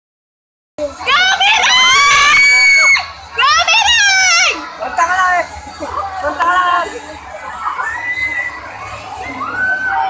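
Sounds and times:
young people screaming: 0:01.1 - 0:04.6, 0:07.5 - 0:10.0.

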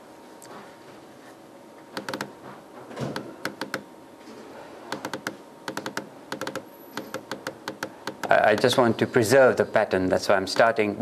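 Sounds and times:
computer keyboard key clicks: 0:02.0 - 0:02.3, 0:03.4 - 0:03.8, 0:04.9 - 0:08.7.

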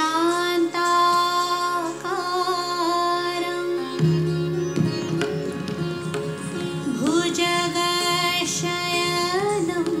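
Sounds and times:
woman singing long held notes: 0:06.8 - 0:10.0.

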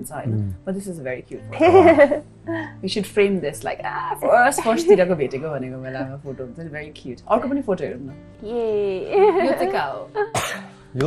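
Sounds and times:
person exclaiming: 0:00.3 - 0:00.6
person coughing: 0:10.3 - 0:10.7.

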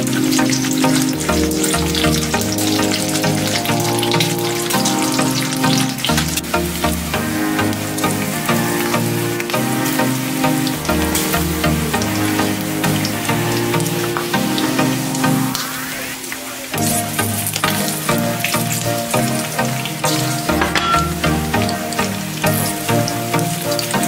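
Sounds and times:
background music: 0:00.0 - 0:24.0.

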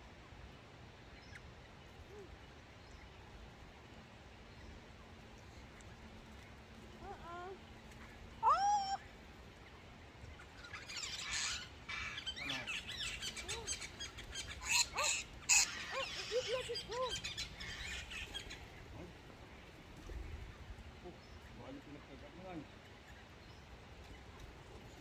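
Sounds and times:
parrots harsh scratchy chattering: 0:10.8 - 0:18.3.

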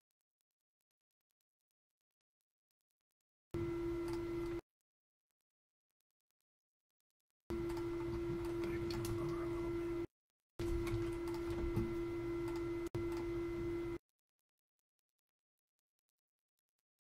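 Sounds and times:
steady single-pitched hum: 0:03.6 - 0:04.6, 0:07.5 - 0:14.0.

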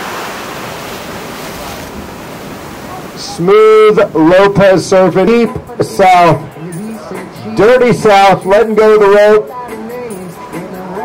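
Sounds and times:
ocean waves breaking: 0:00.0 - 0:11.0.

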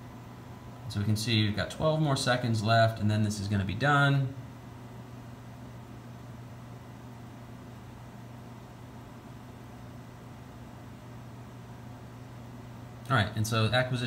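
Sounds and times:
low room hum with hiss: 0:00.0 - 0:14.0.

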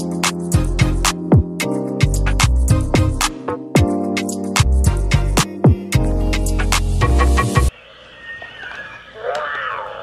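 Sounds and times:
toy dinosaur electronic calls: 0:08.1 - 0:10.0.

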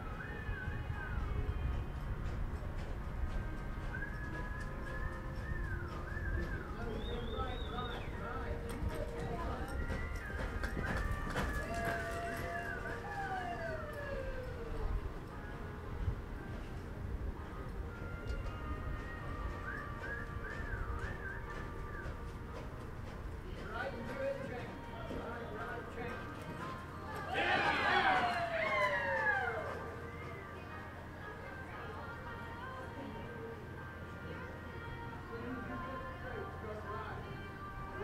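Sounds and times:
faint voices: 0:00.0 - 0:38.0
horse hoofbeats on dirt: 0:01.6 - 0:14.0, 0:16.4 - 0:30.5
hoofbeat thuds on dirt: 0:02.2 - 0:12.6
high wavering whistle tones: 0:03.9 - 0:08.3.

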